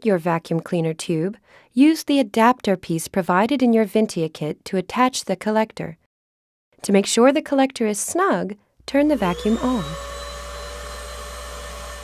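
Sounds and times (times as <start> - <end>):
vacuum cleaner running: 8.9 - 12.0.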